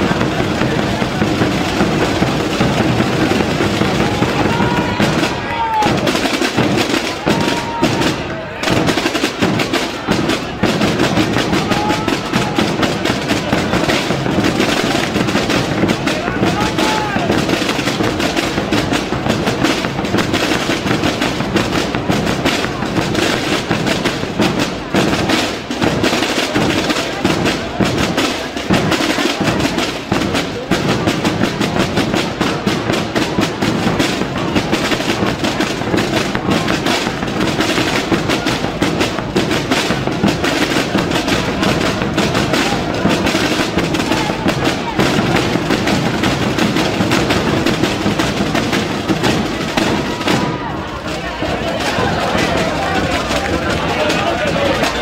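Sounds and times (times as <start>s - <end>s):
snare and bass drums playing: 0.0s - 55.0s.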